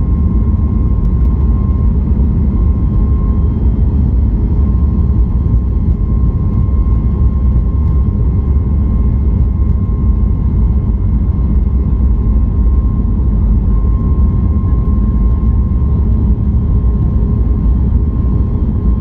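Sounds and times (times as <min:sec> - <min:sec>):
jet engine rumble: 0:00.0 - 0:19.0.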